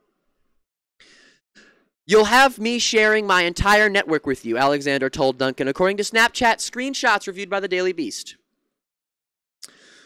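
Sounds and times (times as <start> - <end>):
man breathing faintly: 1.0 - 2.0, 9.6 - 10.0
man speaking: 2.1 - 8.4.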